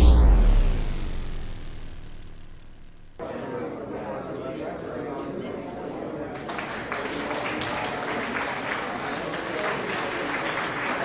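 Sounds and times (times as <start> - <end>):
deep boom: 0.0 - 3.2
low rumble: 0.0 - 3.2
whoosh: 0.0 - 3.2.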